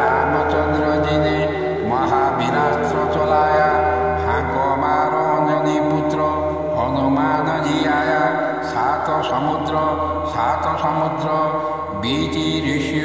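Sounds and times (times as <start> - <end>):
low drone: 0.0 - 13.0
person chanting: 0.0 - 13.0.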